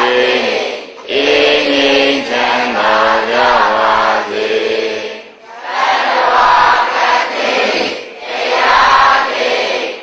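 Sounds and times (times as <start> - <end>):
voices chanting in unison: 0.0 - 10.0.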